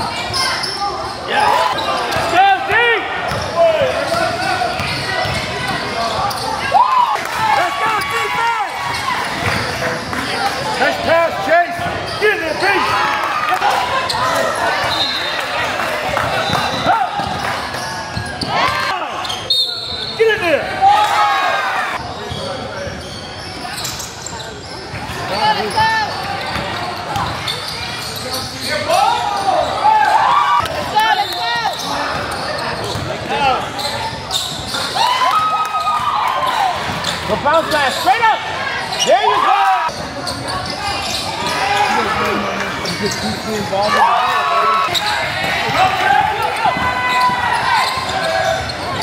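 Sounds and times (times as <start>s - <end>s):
shouts and chatter: 0.0s - 49.0s
basketball bouncing on court: 3.3s - 6.3s, 16.1s - 17.4s.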